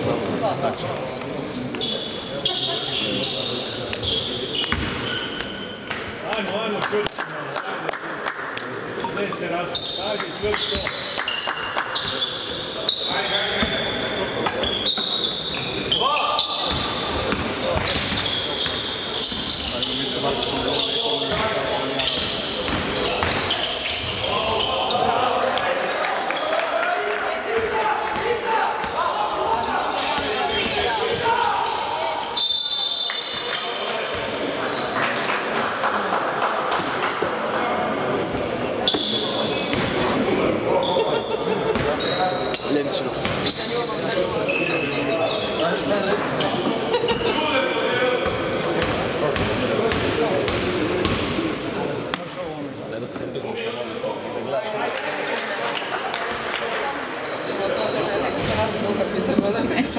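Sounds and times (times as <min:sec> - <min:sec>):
shoes squeaking: 0:01.7 - 0:06.0, 0:09.0 - 0:25.2, 0:38.2 - 0:39.8.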